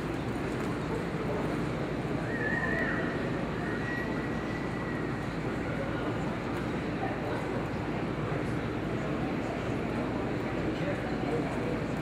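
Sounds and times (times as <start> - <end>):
indoor arena rumble: 0.0 - 12.0.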